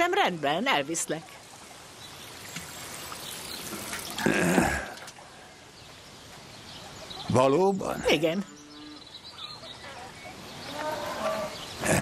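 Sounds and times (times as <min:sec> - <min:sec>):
person sighing: 0:04.2 - 0:05.1
person murmuring: 0:11.8 - 0:12.0.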